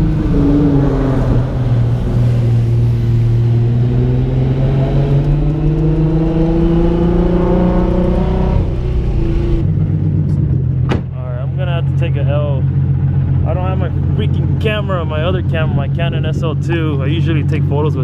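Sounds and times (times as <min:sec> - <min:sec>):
car engine accelerating: 0:00.0 - 0:18.0
man talking: 0:11.2 - 0:12.7, 0:13.4 - 0:18.0.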